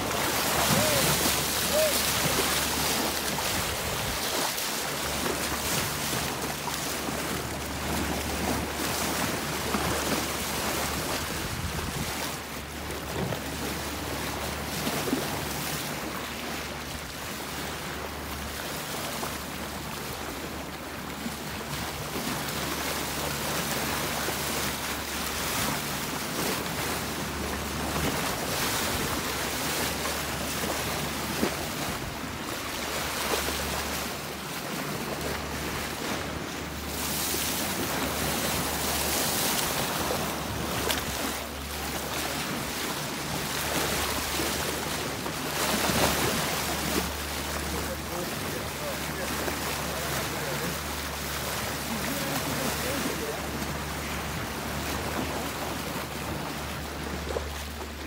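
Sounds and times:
boat engine hum: 0.0 - 58.0
water splashing along boat hull: 0.0 - 58.0
wind buffeting microphone: 11.2 - 12.2.

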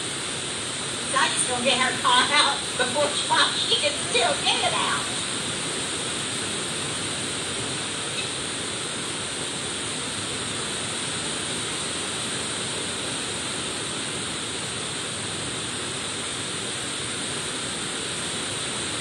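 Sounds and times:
heavy rain on metal roof: 0.0 - 19.0.

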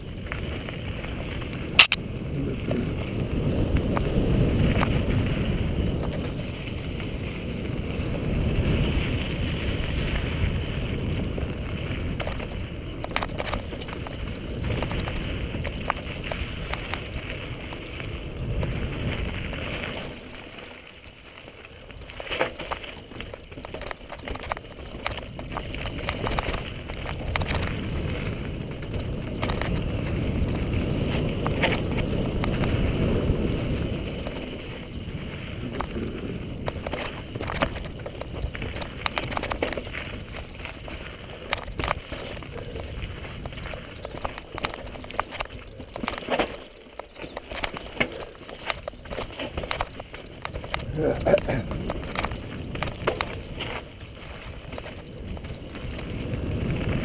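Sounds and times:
bike tyre rushing noise: 0.0 - 57.0
bike knocks and rattles: 3.5 - 21.1, 21.9 - 57.0.

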